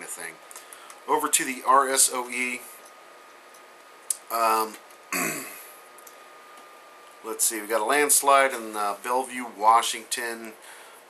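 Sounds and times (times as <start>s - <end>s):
man clearing his throat: 5.1s - 5.7s.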